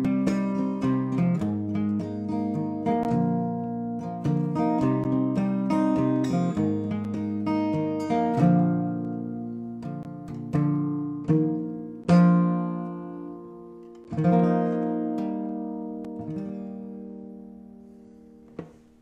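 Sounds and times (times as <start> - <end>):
fingerpicked acoustic guitar: 0.0 - 19.0.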